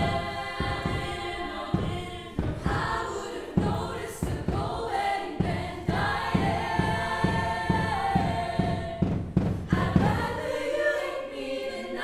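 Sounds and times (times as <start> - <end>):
steady low beat: 0.0 - 10.8
women singing in harmony: 0.0 - 12.0.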